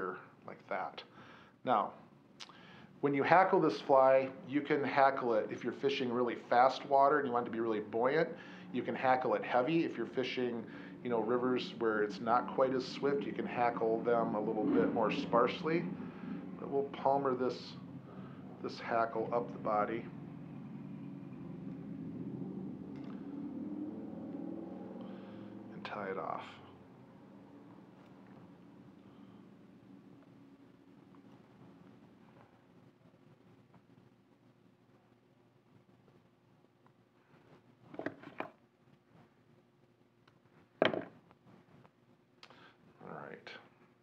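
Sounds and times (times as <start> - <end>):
low mechanical hum: 0.0 - 44.0.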